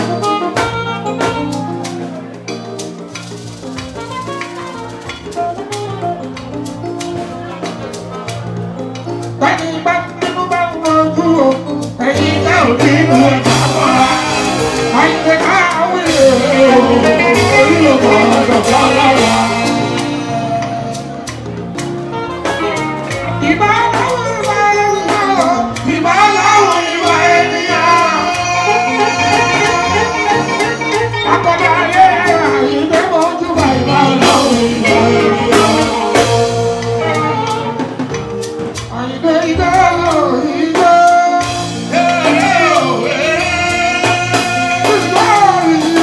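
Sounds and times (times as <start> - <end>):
drum kit hits and cymbals: 0.0 - 9.6, 11.5 - 46.0
electric bass line: 0.0 - 46.0
live band playing instrumental music: 0.0 - 46.0
percussion strikes: 0.0 - 46.0
man singing into a microphone: 9.4 - 21.0, 23.4 - 38.0, 38.8 - 46.0.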